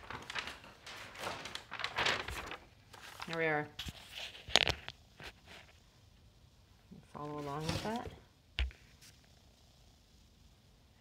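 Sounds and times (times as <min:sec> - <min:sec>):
paper rustling: 0:00.0 - 0:05.8, 0:07.2 - 0:09.2.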